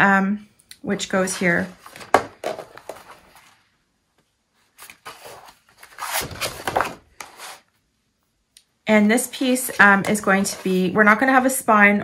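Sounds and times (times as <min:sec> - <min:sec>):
cardstock rustling and scraping: 0:01.1 - 0:03.7, 0:04.7 - 0:07.7, 0:09.2 - 0:10.9.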